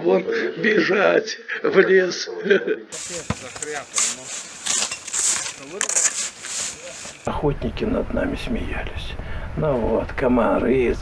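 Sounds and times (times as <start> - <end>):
footsteps crunching on snow: 3.0 - 7.3
quiet voices talking: 3.0 - 8.9.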